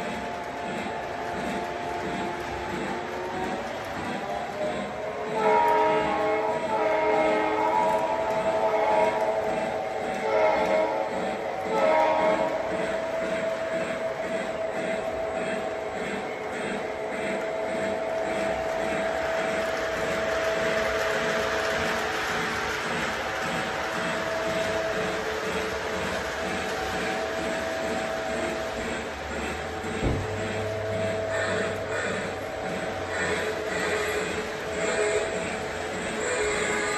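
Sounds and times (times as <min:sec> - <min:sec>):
model locomotive engine droning: 0:00.0 - 0:36.9
model train horn blasts: 0:05.3 - 0:12.8.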